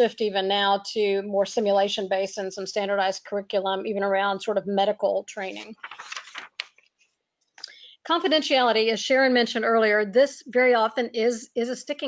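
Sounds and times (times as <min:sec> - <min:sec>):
quick breath: 0:07.6 - 0:08.0.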